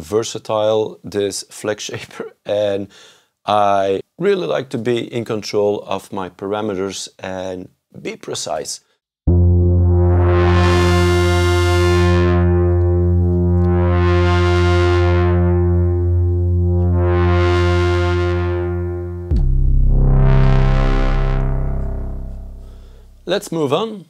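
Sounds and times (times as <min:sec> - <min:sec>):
sustained synthesizer tone: 0:09.3 - 0:23.3.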